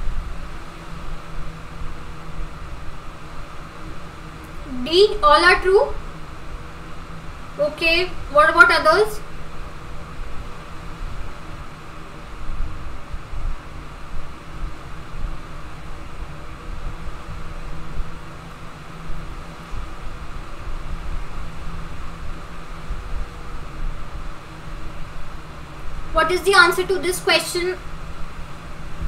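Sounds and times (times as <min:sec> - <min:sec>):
faint steady hum: 0:00.0 - 0:29.0.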